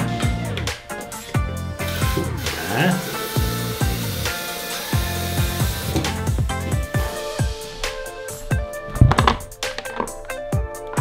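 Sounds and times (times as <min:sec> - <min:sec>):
music with kick-drum beat: 0:00.0 - 0:11.0.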